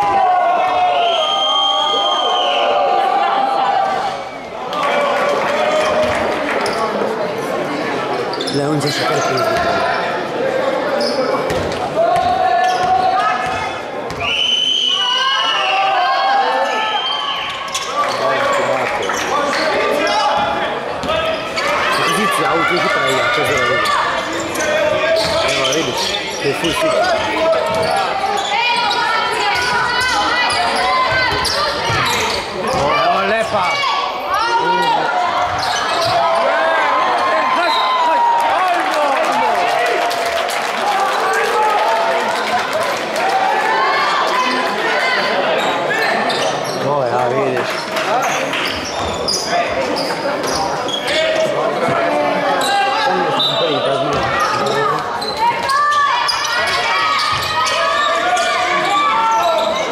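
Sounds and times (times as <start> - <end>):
voices shouting in sports hall: 0.0 - 59.9.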